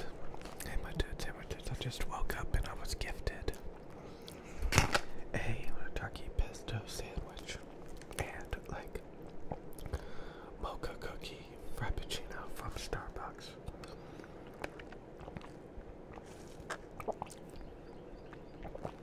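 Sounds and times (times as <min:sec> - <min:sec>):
chewing a sandwich: 0:00.0 - 0:01.6, 0:03.4 - 0:04.6, 0:07.4 - 0:08.5, 0:09.2 - 0:10.1, 0:13.3 - 0:19.0.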